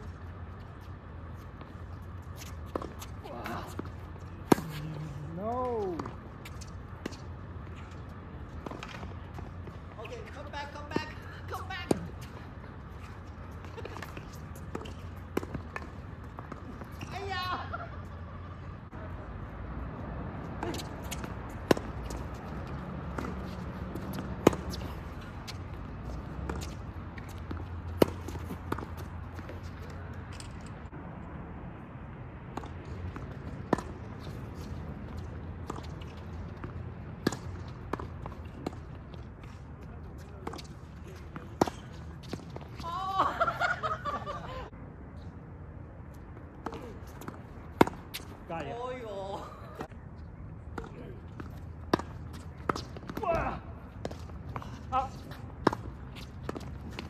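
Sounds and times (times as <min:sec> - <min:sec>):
balls bouncing on hard court: 0:01.6 - 0:12.4, 0:13.0 - 0:17.7, 0:20.4 - 0:30.6, 0:50.6 - 0:57.0
tennis balls struck by racquets: 0:02.3 - 0:12.4, 0:13.5 - 0:17.6, 0:20.5 - 0:30.7, 0:32.4 - 0:42.9, 0:46.4 - 0:49.1, 0:50.6 - 0:57.0.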